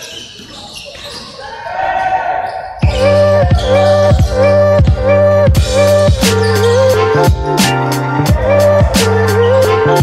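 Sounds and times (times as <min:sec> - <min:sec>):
players' voices: 0:08.0 - 0:10.0.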